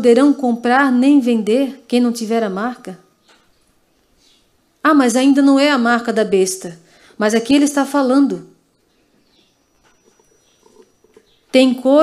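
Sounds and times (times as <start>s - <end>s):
steady high-pitched whine: 0.0s - 12.0s
soft indistinct sounds: 8.8s - 11.8s.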